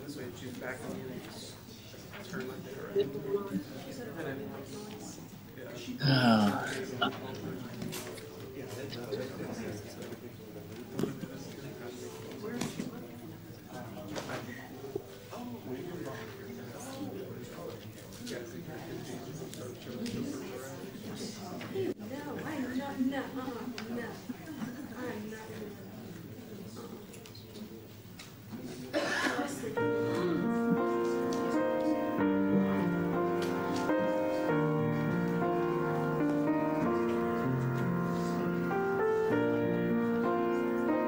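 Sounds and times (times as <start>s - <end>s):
low conversation of people: 0.0s - 41.0s
murmur of people talking: 0.0s - 41.0s.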